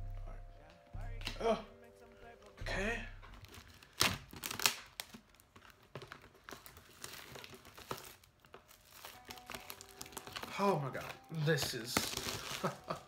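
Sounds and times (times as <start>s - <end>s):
packaging crinkling: 3.3s - 13.0s
packaging ripping: 3.4s - 13.0s.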